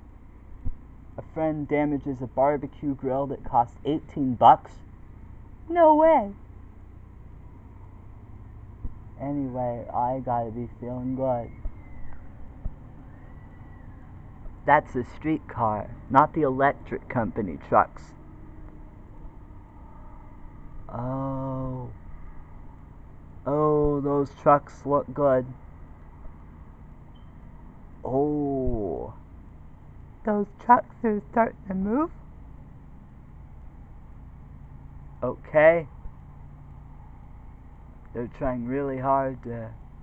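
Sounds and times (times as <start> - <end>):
distant vehicle engines rumbling: 0.0 - 40.0
low hum: 0.0 - 40.0.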